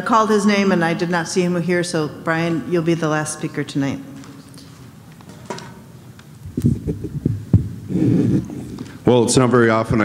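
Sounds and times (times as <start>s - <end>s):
microphone handling thumps: 6.4s - 9.0s.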